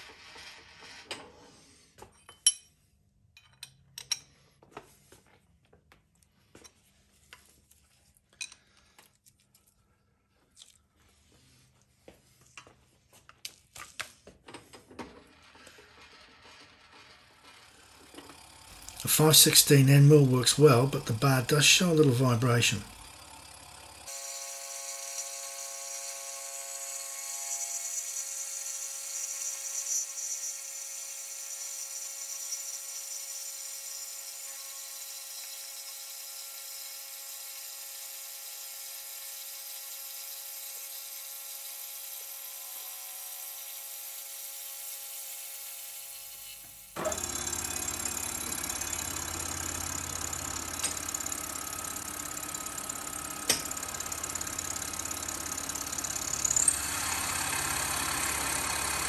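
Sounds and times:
milling machine cutting steel: 0:15.6 - 0:59.0.

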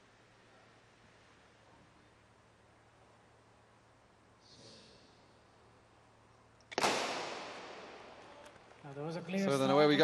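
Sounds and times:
starting gun crack with echo: 0:06.7 - 0:08.8.

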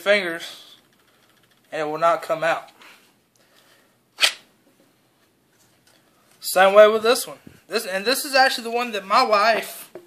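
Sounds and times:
pistol drawn from holster snap: 0:04.2 - 0:04.5.

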